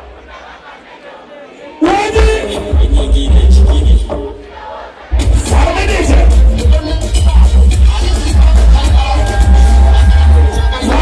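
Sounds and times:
crowd noise: 0:00.0 - 0:11.0
loud live music over pa: 0:01.8 - 0:11.0.

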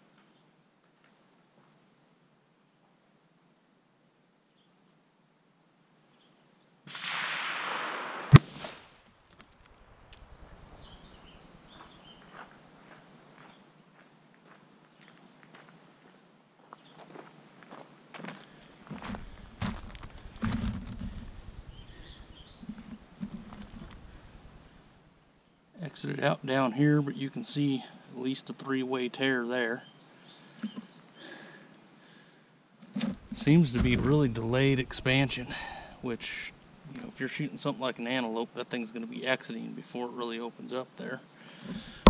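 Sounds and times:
rifle shot crack: 0:06.9 - 0:11.5
footsteps on gravel: 0:10.6 - 0:24.6, 0:32.9 - 0:36.4.

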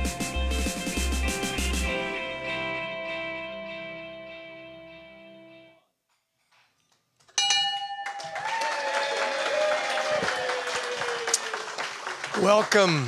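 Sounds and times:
audience applauding: 0:08.0 - 0:13.0.

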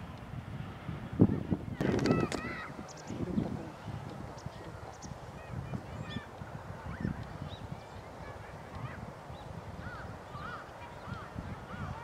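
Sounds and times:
birds chirping: 0:01.7 - 0:12.0.

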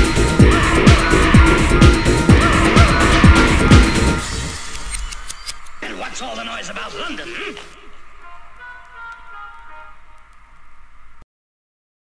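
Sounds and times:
vocal sample: 0:00.0 - 0:04.9
held high synth tones: 0:00.0 - 0:10.3.

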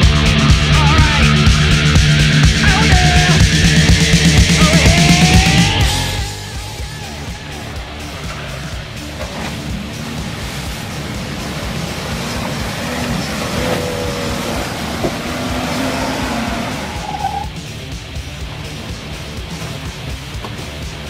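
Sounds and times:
engine revving under load: 0:00.0 - 0:21.0
rock music: 0:00.0 - 0:21.0
tyres throwing mud: 0:03.2 - 0:21.0.

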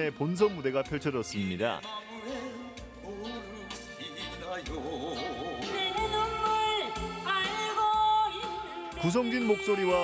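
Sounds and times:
musical accompaniment: 0:00.0 - 0:10.0
person singing into a microphone: 0:01.8 - 0:10.0.

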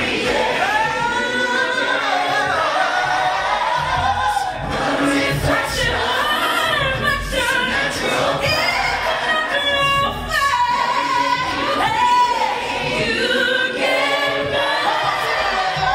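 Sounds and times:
stacked vocal harmonies: 0:00.0 - 0:15.9
woman singing lead: 0:03.3 - 0:15.9.

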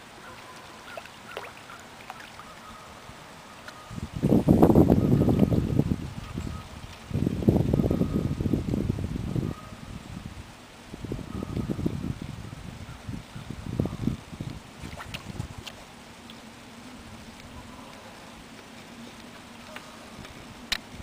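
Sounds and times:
wind buffeting microphone: 0:03.8 - 0:15.9.

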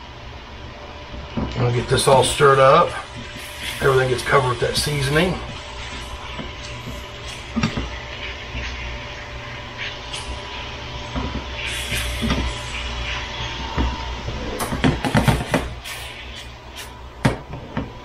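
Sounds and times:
steady low hum: 0:00.0 - 0:18.0
chicken frying in a skillet: 0:02.1 - 0:13.6.

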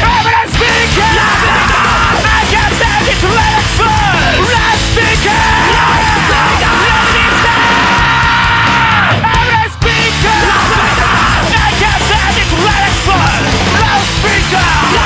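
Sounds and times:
person yelling vocals: 0:00.0 - 0:15.0
thrashcore band playing: 0:00.0 - 0:15.0.

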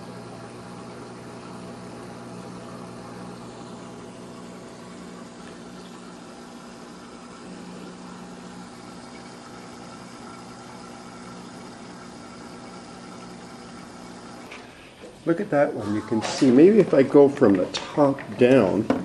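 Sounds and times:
aquarium filter pump humming: 0:00.0 - 0:19.0.

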